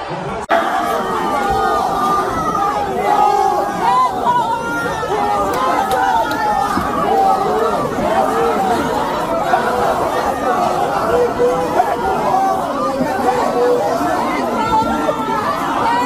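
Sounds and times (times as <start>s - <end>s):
crowd talking: 0.0s - 16.0s.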